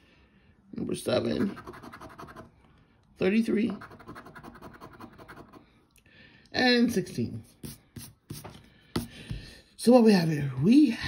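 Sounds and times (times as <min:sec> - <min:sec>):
coin scratching a lottery ticket: 0:01.4 - 0:02.5, 0:03.8 - 0:05.6.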